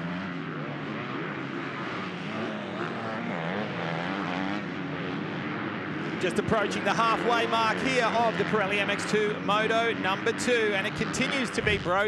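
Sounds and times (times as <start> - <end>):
motocross bike engines revving: 0.0 - 12.0.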